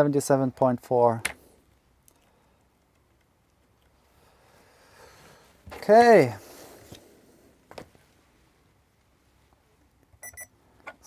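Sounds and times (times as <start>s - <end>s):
high electronic beeps: 10.2s - 10.5s.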